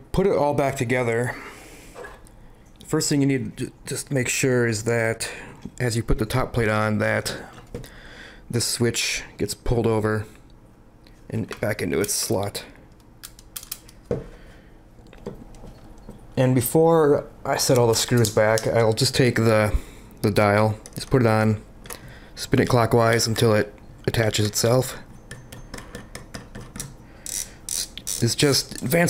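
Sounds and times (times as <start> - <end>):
camera dial ratcheting clicks: 27.2 - 28.2.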